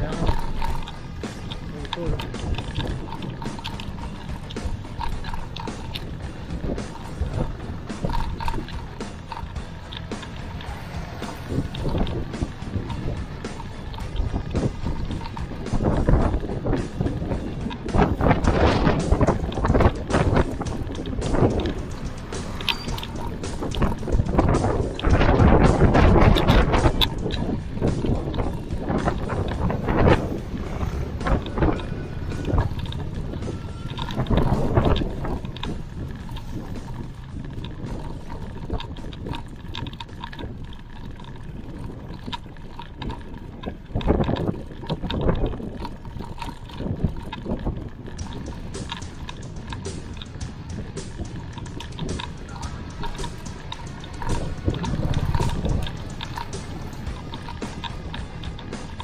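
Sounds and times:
road noise: 0:00.0 - 0:59.0
wind buffeting microphone: 0:00.0 - 0:59.0.

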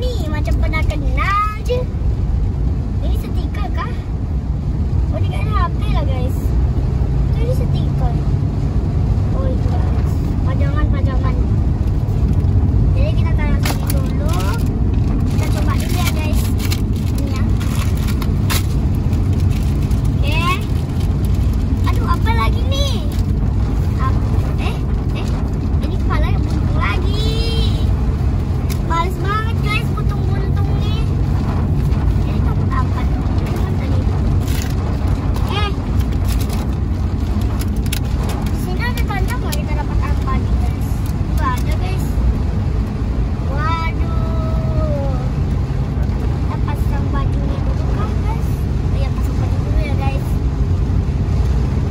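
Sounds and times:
car engine rumble: 0:00.0 - 0:51.9
road noise: 0:00.0 - 0:51.9
plastic wrappers crinkling: 0:13.6 - 0:21.7.

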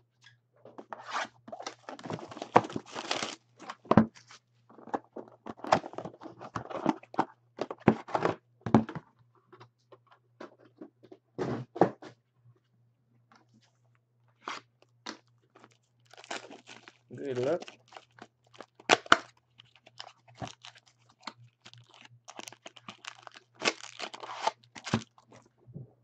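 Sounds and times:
cardboard and wrapper tearing: 0:01.1 - 0:03.9, 0:14.4 - 0:25.4.

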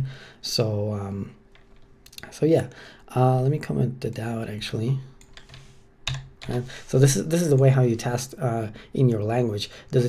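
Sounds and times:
computer keyboard keystrokes: 0:05.2 - 0:06.6.

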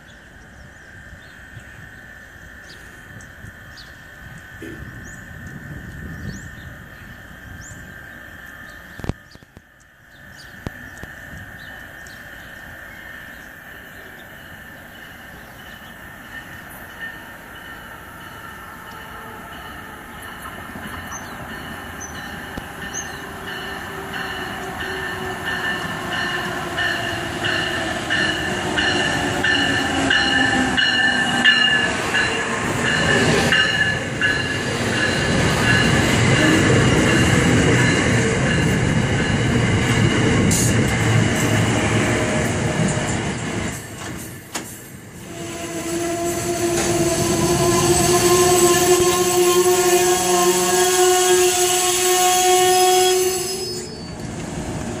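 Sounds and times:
train coaches rolling rumble: 0:00.0 - 0:55.0
locomotive bell ringing: 0:14.0 - 0:39.8.

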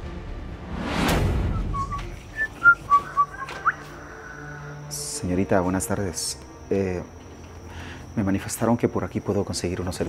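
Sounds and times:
whistled notes: 0:01.2 - 0:05.3.

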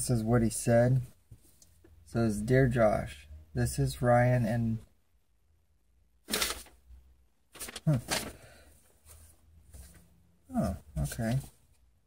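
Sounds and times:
paper rustling: 0:06.3 - 0:06.8, 0:07.5 - 0:10.1.

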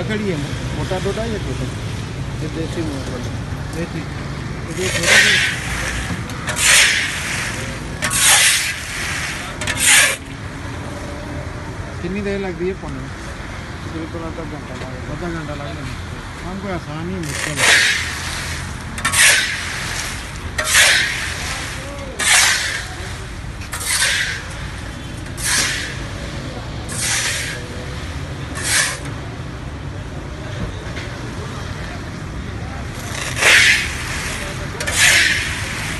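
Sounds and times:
market bustle: 0:00.0 - 0:35.9
street traffic rumble: 0:00.0 - 0:35.9
sand scraping in a steel wok: 0:04.7 - 0:10.3, 0:17.2 - 0:27.8, 0:28.5 - 0:29.1, 0:32.9 - 0:35.9.

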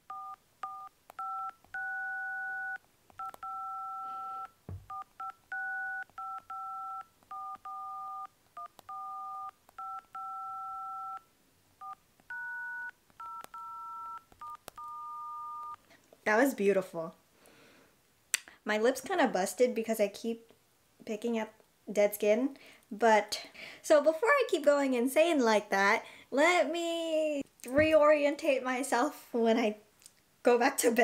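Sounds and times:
phone dial-pad touch tones: 0:00.1 - 0:15.8.

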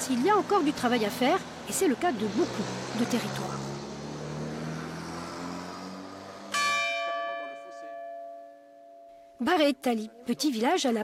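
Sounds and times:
church bell ringing: 0:06.5 - 0:09.8.

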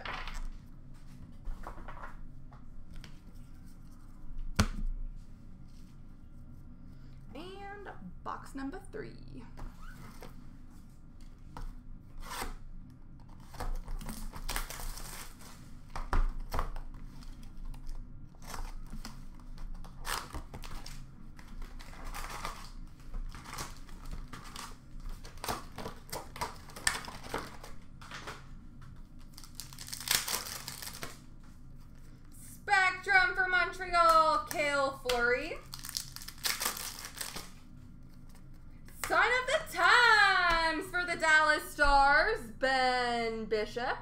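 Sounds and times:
plastic and foil packs torn open: 0:13.4 - 0:15.5, 0:19.6 - 0:27.8, 0:29.2 - 0:31.2, 0:35.6 - 0:37.6.

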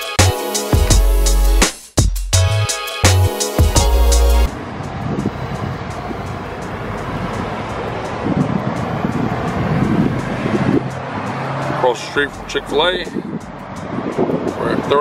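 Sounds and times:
music with heavy beat: 0:00.0 - 0:11.7, 0:12.4 - 0:15.0
road traffic: 0:02.4 - 0:15.0
wind on microphone: 0:04.5 - 0:11.8, 0:12.4 - 0:15.0.

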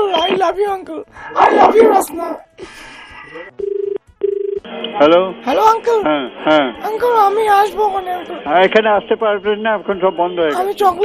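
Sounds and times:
telephone ringback tone: 0:03.6 - 0:04.6.

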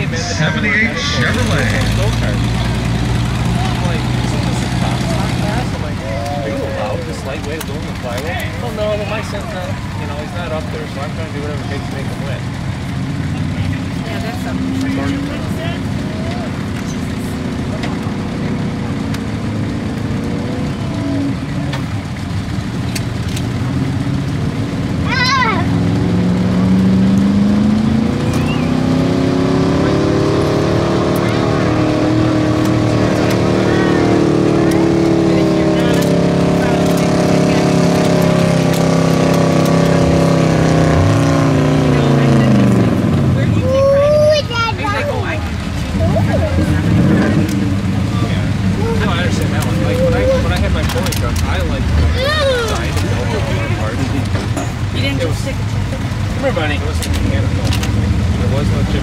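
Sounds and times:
truck engine revving under load: 0:00.0 - 0:59.0.

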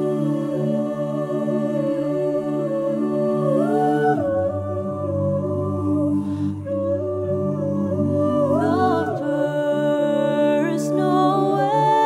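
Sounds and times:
a cappella choir singing: 0:00.0 - 0:12.0.

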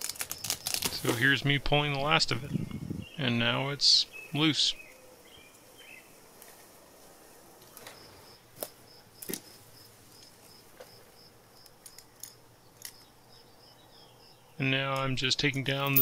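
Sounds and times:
faint insect chirping: 0:07.6 - 0:14.6.

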